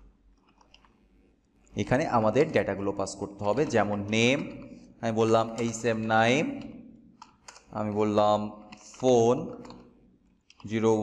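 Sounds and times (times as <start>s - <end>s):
keyboard typing clicks: 0.4s - 1.0s, 3.5s - 8.1s, 8.7s - 10.8s
man speaking: 1.8s - 6.7s, 7.7s - 9.7s, 10.6s - 11.0s.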